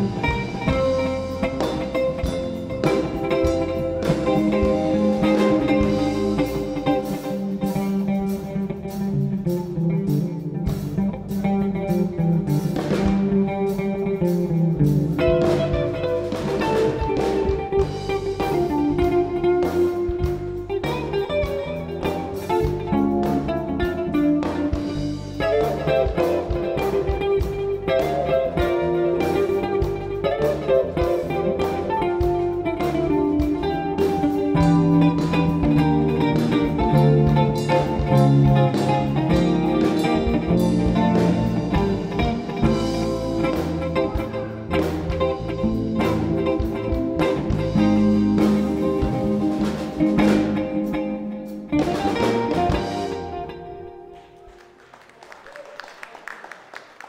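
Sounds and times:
electric bass guitar: 0.0 - 54.8
electric guitar melodic lines: 0.0 - 55.1
drums: 0.0 - 57.0.

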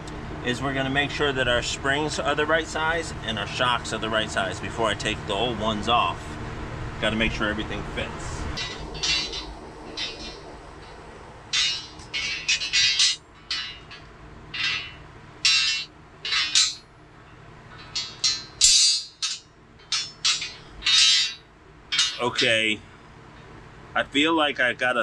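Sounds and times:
steel springs clinking: 8.5 - 22.7.

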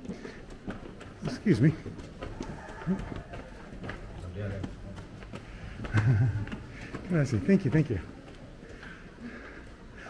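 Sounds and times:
footsteps on stone steps: 0.0 - 10.0.

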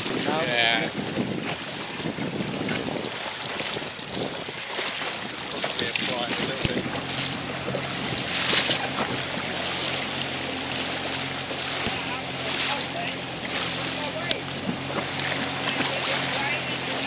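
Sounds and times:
wind on microphone: 0.0 - 12.5
low motor hum: 0.0 - 17.0
water washing around boat: 0.0 - 17.0.

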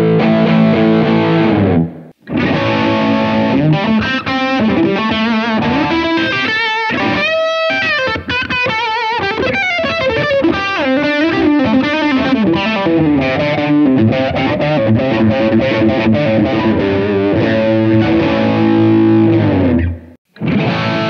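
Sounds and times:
electric guitar lead: 0.0 - 21.0.

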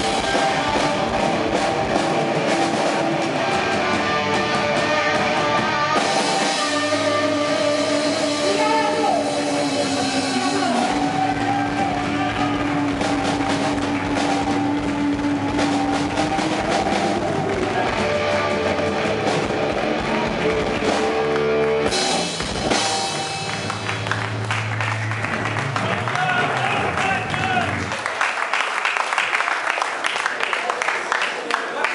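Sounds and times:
drums and cymbals: 0.0 - 24.4
distorted electric guitar: 0.0 - 27.9.

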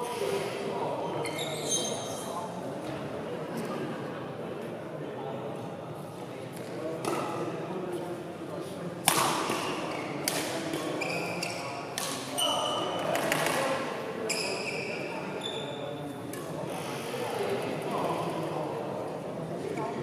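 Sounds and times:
shoes squeaking on the floor: 1.0 - 2.4, 11.0 - 11.7, 12.3 - 13.0, 14.2 - 15.8
rackets striking a shuttlecock: 6.6 - 7.4, 9.0 - 13.8.

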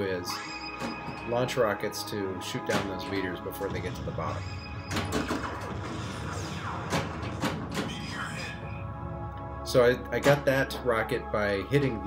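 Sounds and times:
pinball electronic tones: 0.2 - 1.8, 2.7 - 8.0.

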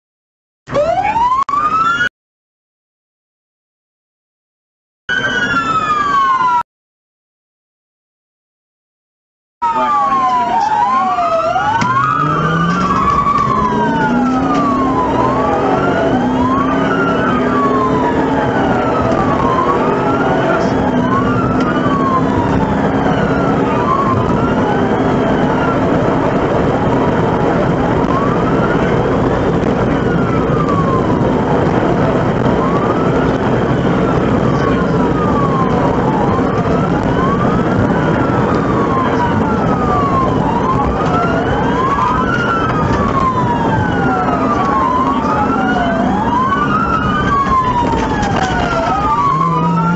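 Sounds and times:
police siren wailing: 0.7 - 2.1, 5.1 - 6.7, 9.6 - 49.9
car engine accelerating: 9.7 - 49.9.

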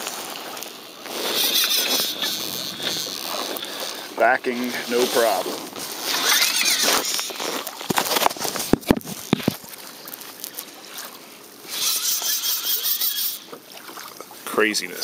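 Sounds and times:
fishing reel drag buzzing: 0.0 - 7.7, 11.6 - 13.6.

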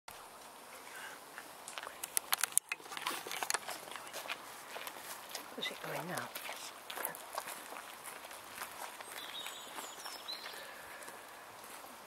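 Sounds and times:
camera handling clicks and knocks: 2.0 - 3.7.

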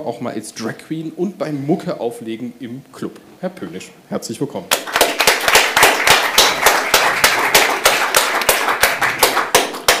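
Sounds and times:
audience applauding: 4.7 - 10.0.

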